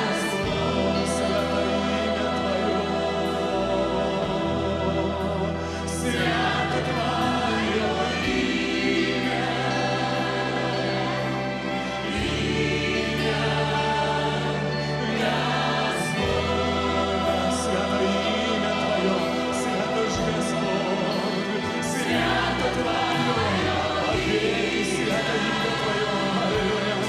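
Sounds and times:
instrumental accompaniment: 0:00.0 - 0:27.0.

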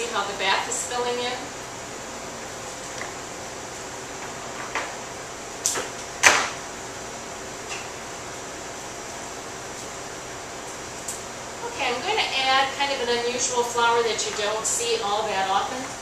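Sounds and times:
room hiss: 0:00.0 - 0:16.0.

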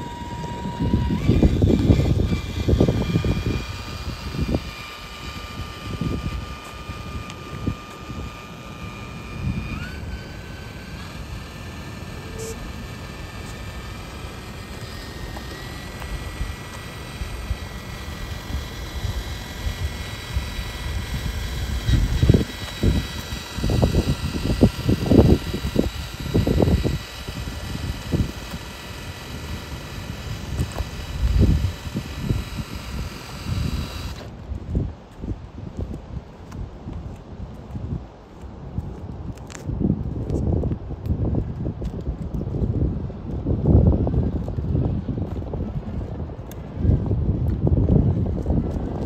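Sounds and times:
electric motor whining: 0:00.0 - 0:34.4.

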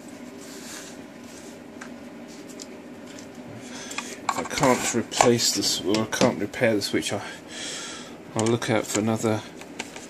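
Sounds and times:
man talking: 0:04.3 - 0:07.4, 0:08.3 - 0:09.6.

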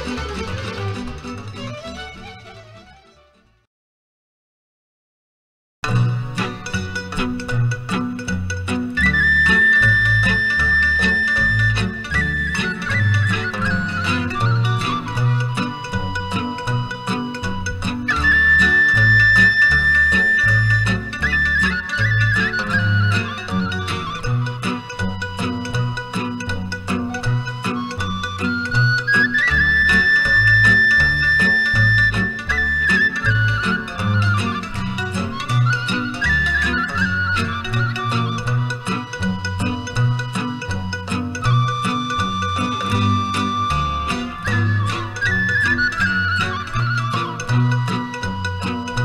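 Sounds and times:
bass notes: 0:00.0 - 0:03.0, 0:05.8 - 0:49.0
rhythmic accompaniment: 0:00.0 - 0:03.1, 0:05.8 - 0:49.0
folk music lead melody: 0:00.0 - 0:03.7, 0:05.8 - 0:49.0.

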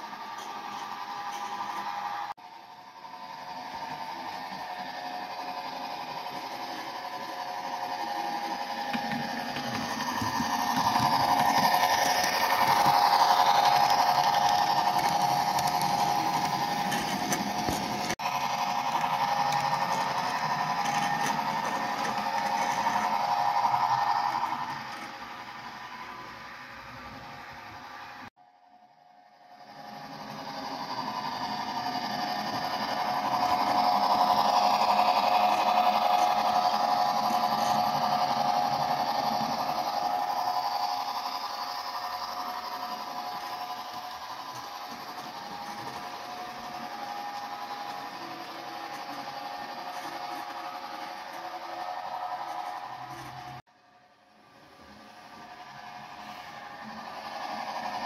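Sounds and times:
model train motor whirring: 0:00.0 - 0:02.3, 0:03.0 - 0:28.2, 0:29.6 - 0:53.6, 0:55.0 - 0:58.0.

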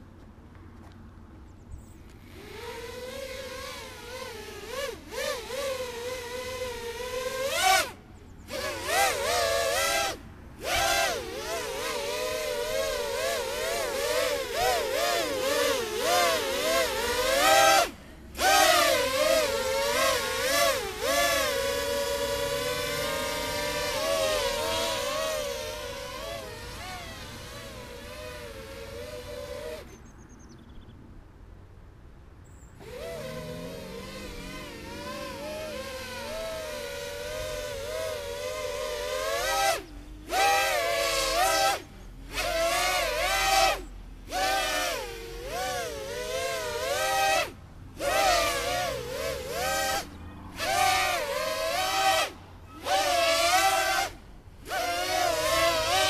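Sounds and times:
drone propellers buzzing: 0:01.9 - 0:30.0, 0:32.8 - 0:56.0.

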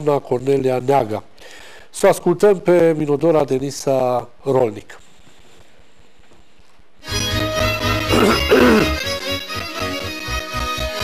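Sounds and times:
folk music led by violin: 0:09.0 - 0:11.0.

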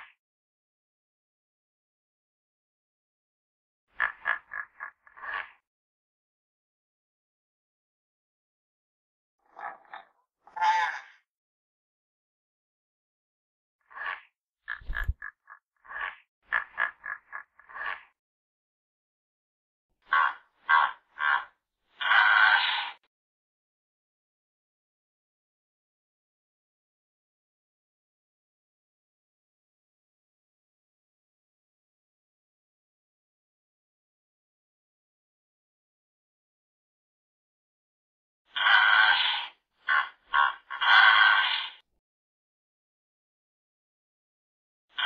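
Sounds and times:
hippopotamus calls: 0:20.1 - 0:22.9, 0:38.5 - 0:41.8.

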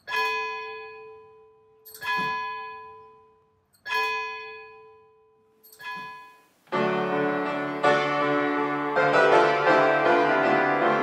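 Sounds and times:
church bell tolling: 0:05.8 - 0:11.0.

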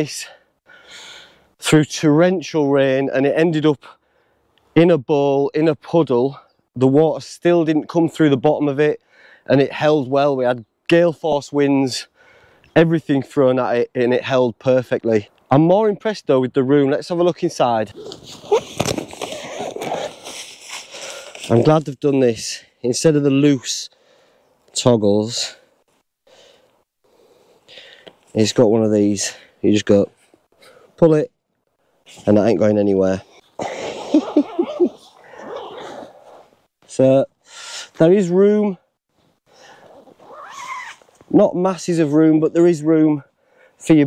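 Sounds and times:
tent fabric rustling: 0:17.9 - 0:21.6.

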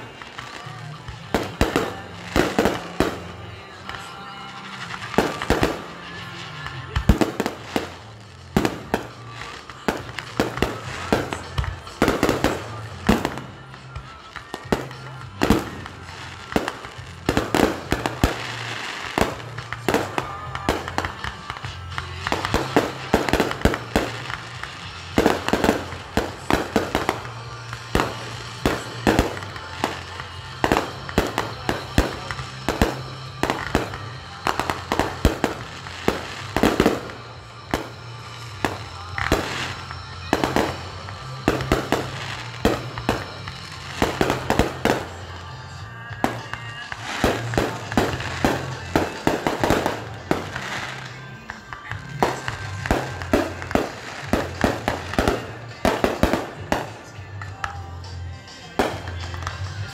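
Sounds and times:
fireworks bangs and crackles: 0:00.0 - 0:59.9.

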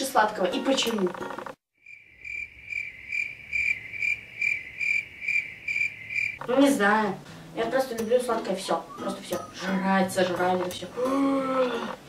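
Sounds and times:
cricket chirping: 0:01.8 - 0:06.4.

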